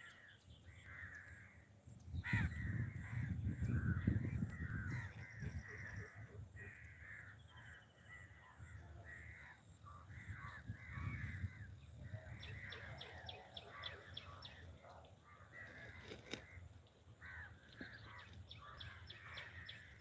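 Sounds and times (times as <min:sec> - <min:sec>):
crows cawing: 0:00.0 - 0:20.0.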